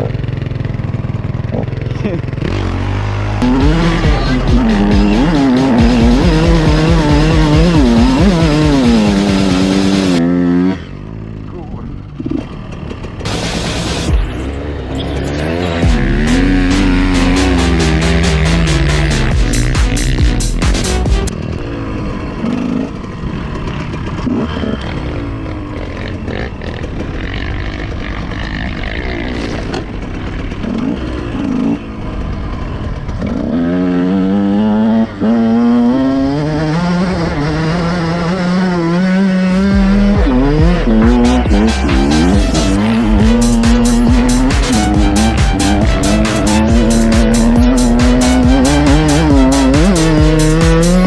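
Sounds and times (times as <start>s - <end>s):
dirt bike engine revving: 0.0s - 51.0s
music with steady beat: 3.4s - 10.2s, 13.3s - 14.5s, 15.8s - 21.3s, 39.5s - 51.0s.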